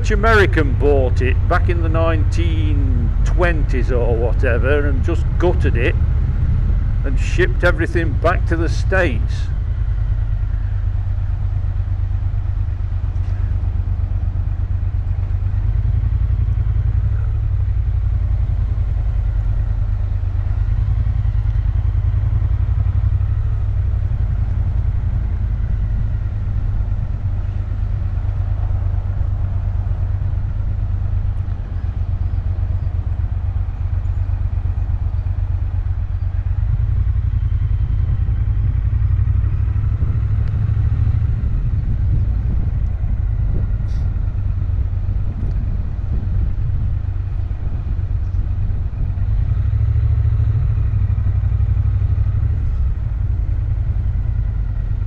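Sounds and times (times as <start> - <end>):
motorcycle engine cruising: 0.0 - 55.0.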